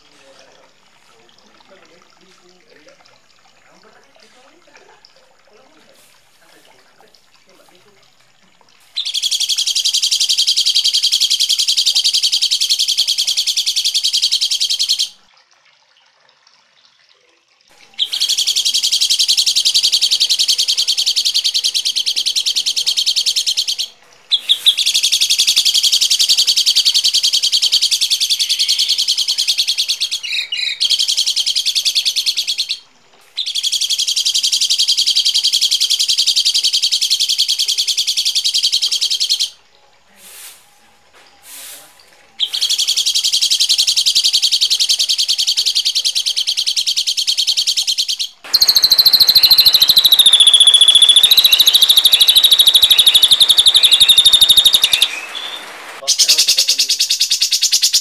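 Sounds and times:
noisy bird call with falling whistle: 0:18.0 - 0:32.8, 0:42.4 - 0:58.0
songbird buzzy chatter: 0:18.0 - 0:39.6, 0:42.4 - 0:58.0.

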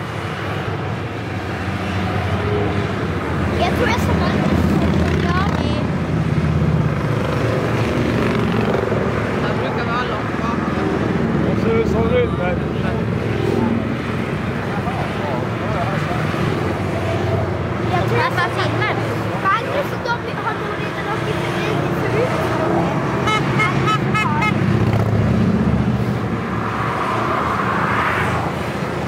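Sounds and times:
people talking: 0:03.5 - 0:05.9, 0:17.9 - 0:22.8.

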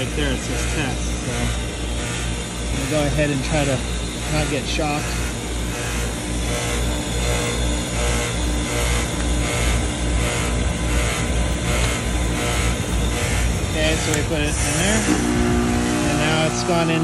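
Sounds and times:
heat pump compressor and fan hum: 0:00.0 - 0:17.0.

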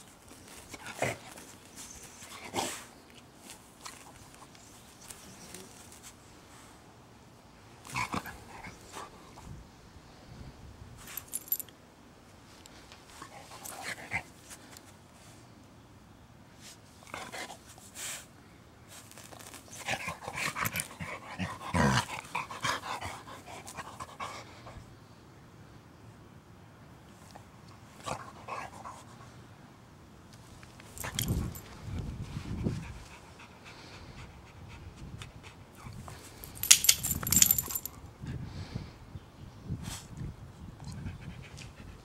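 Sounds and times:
metallic jingle: 0:11.2 - 0:11.6, 0:31.0 - 0:31.6, 0:36.4 - 0:38.0.

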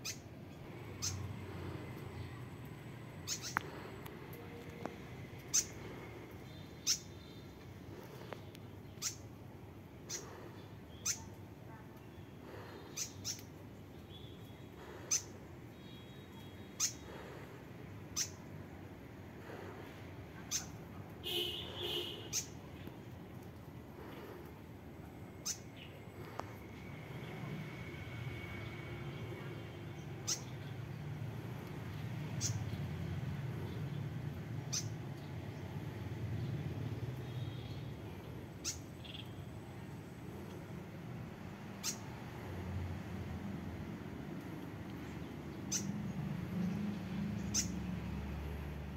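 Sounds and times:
bird chirps: 0:00.0 - 0:02.4, 0:03.2 - 0:04.0, 0:05.4 - 0:07.6, 0:10.1 - 0:11.4, 0:12.2 - 0:17.4, 0:18.1 - 0:18.4, 0:29.9 - 0:30.7, 0:34.7 - 0:35.0, 0:38.6 - 0:39.4, 0:45.6 - 0:46.0, 0:46.6 - 0:47.8
small bird calling: 0:00.0 - 0:09.4, 0:10.0 - 0:18.8, 0:19.4 - 0:27.7, 0:29.3 - 0:40.7, 0:41.7 - 0:42.6, 0:44.4 - 0:48.6.

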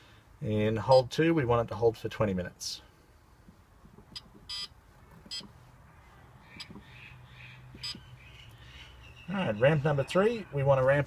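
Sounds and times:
keypad beeps: 0:04.2 - 0:04.7, 0:05.3 - 0:05.5, 0:07.8 - 0:08.0.

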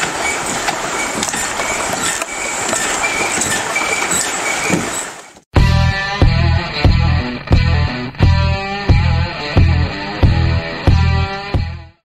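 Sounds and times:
rock music with electric guitar: 0:05.6 - 0:12.0.

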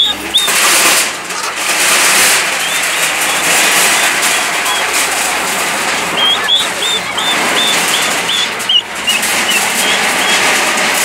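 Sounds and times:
excavator demolishing metal shacks: 0:00.0 - 0:11.0
short high squeaks: 0:06.1 - 0:10.4.

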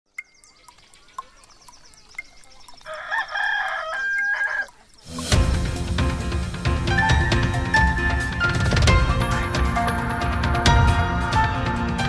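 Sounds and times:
fast clock ticking: 0:00.1 - 0:06.0
rooster crowing: 0:02.9 - 0:04.8
music jingle with a beat: 0:03.4 - 0:11.4.

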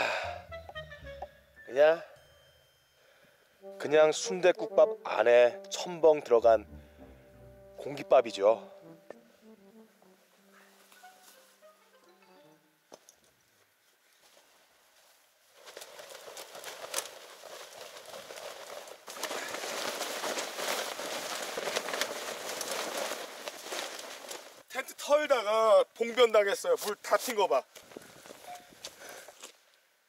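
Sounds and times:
soft background music: 0:00.0 - 0:03.0, 0:03.6 - 0:12.9
tent fabric rustling and crackling: 0:13.0 - 0:25.3, 0:26.0 - 0:29.7.

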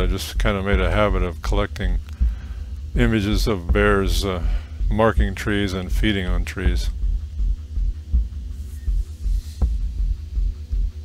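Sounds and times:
deep bass pulse: 0:00.0 - 0:11.0
low sustained tones: 0:00.0 - 0:11.0.

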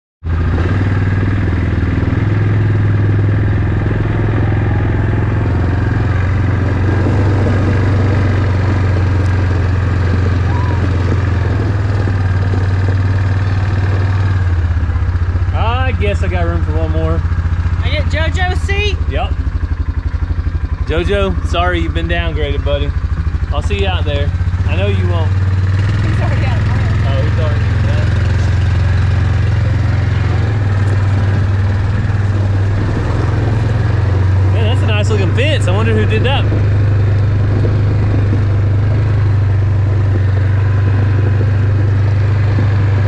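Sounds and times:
quad bike engine: 0:00.2 - 0:43.0.

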